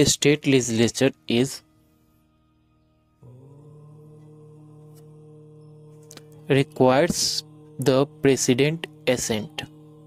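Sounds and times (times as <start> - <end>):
drone-like held chord: 0.0 - 10.0.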